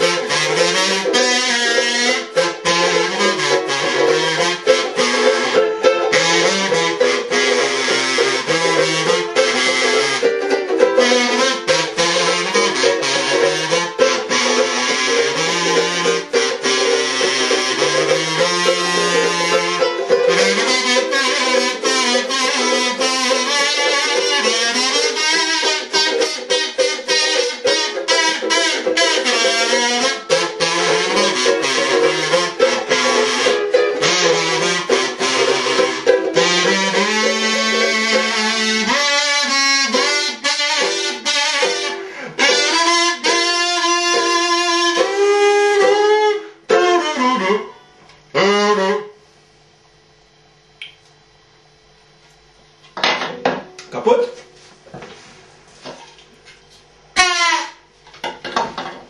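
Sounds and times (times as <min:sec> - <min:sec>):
ukulele strumming: 0:00.0 - 0:47.9
kazoo buzzing a tune: 0:00.0 - 0:52.9, 0:53.5 - 0:58.1.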